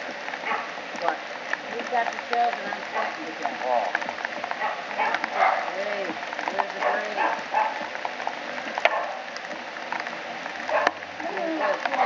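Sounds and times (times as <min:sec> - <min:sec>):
people talking indistinctly: 0:01.0 - 0:04.0, 0:05.0 - 0:07.4.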